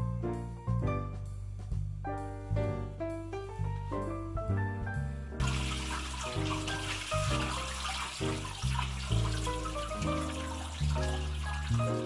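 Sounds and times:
background music: 0:00.0 - 0:12.0
water running and splashing: 0:05.4 - 0:12.0.

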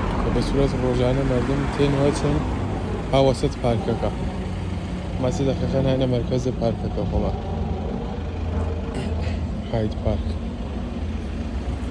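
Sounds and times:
people talking: 0:00.3 - 0:02.4, 0:03.1 - 0:04.2, 0:05.2 - 0:07.4, 0:09.0 - 0:10.4.

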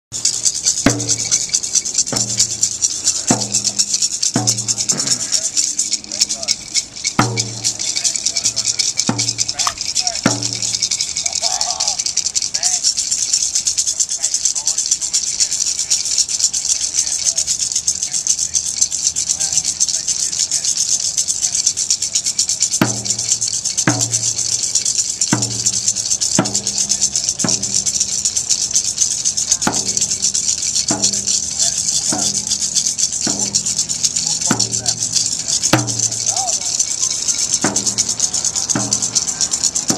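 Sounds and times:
drum beating slowly: 0:00.1 - 0:39.9
high shaker rattle: 0:00.1 - 0:39.9.

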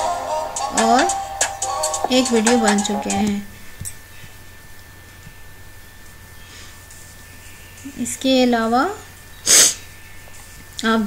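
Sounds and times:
person breathy burst: 0:09.5 - 0:09.9.

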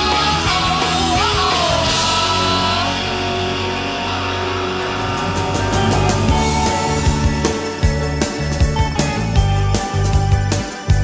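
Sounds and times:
electric guitars ringing chord: 0:02.0 - 0:09.0
sharp drum hits: 0:04.6 - 0:08.3.

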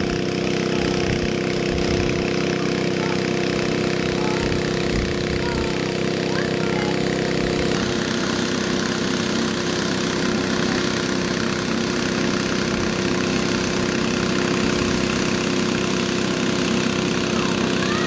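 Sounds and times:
small motor droning: 0:00.0 - 0:18.0.

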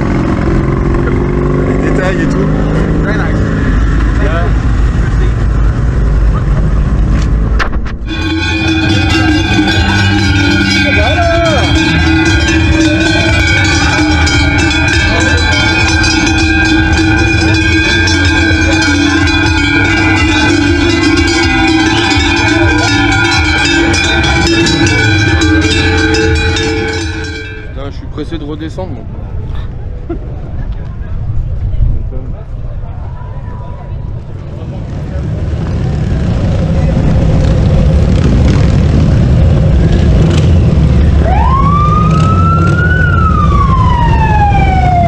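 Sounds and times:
deep engine-like rumble: 0:00.0 - 0:28.4, 0:29.0 - 0:45.0
cowbells clanging: 0:08.1 - 0:28.0.

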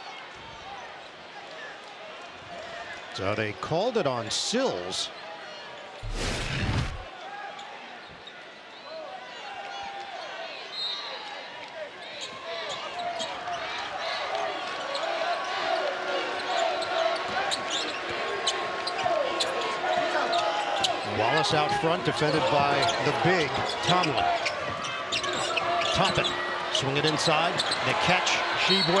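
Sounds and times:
arena crowd voices: 0:00.0 - 0:29.0
transition whoosh: 0:06.0 - 0:07.1.

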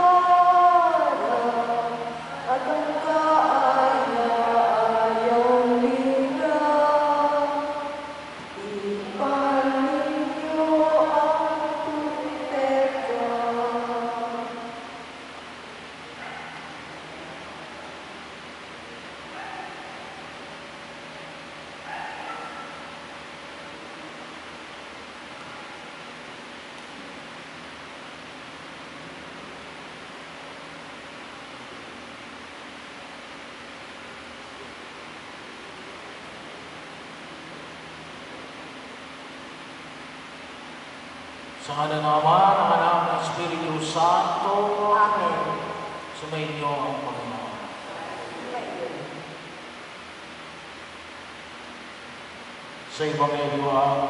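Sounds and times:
voices singing a hymn: 0:00.0 - 0:15.0
low room noise hiss: 0:00.0 - 0:54.0.

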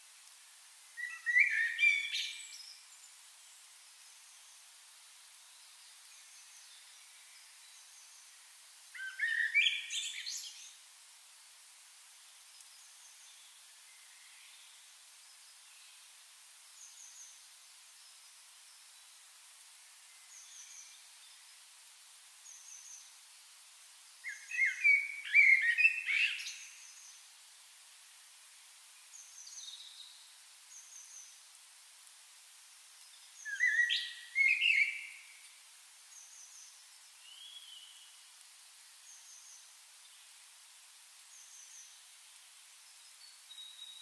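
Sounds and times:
background hiss: 0:00.0 - 0:44.0
songbird warbling: 0:01.0 - 0:02.3, 0:24.2 - 0:26.8, 0:33.4 - 0:35.2.

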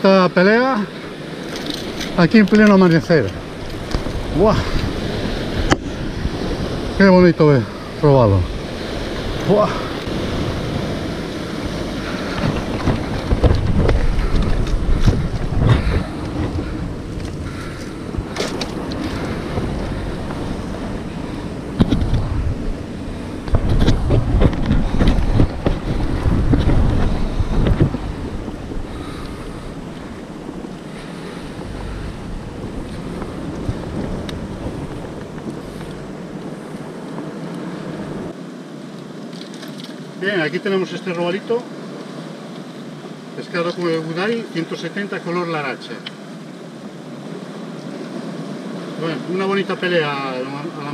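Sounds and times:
wind buffeting microphone: 0:00.0 - 0:39.3
surf breaking on rocks: 0:00.0 - 0:50.9.

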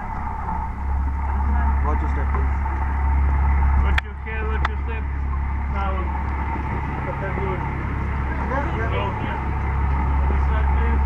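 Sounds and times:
boat engine rumble: 0:00.0 - 0:11.0
faint voices talking: 0:01.2 - 0:11.0.

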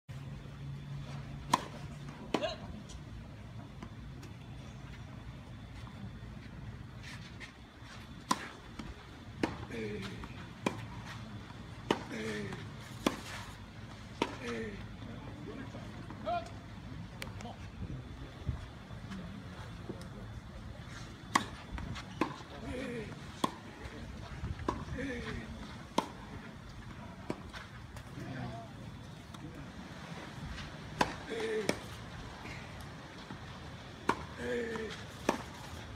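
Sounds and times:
tennis ball hits: 0:21.3 - 0:22.4.

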